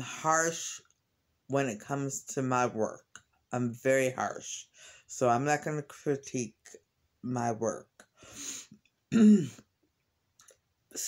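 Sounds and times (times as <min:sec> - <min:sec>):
woman clearing her throat: 0:09.1 - 0:09.6.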